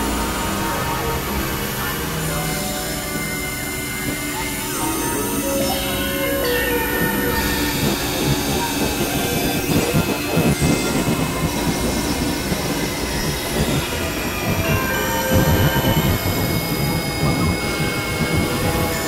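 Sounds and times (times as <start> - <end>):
high piercing electronic tones: 0.0 - 19.0.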